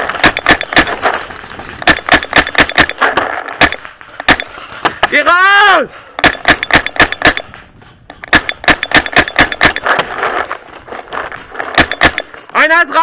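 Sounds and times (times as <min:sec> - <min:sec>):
paintball markers firing: 0:00.0 - 0:05.0, 0:06.2 - 0:12.6.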